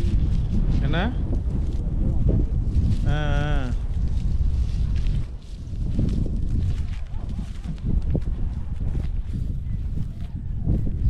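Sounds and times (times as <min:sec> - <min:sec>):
cattle hooves on straw stubble: 0:00.0 - 0:11.0
footsteps crunching on straw: 0:00.0 - 0:11.0
steady low rumble: 0:00.0 - 0:11.0.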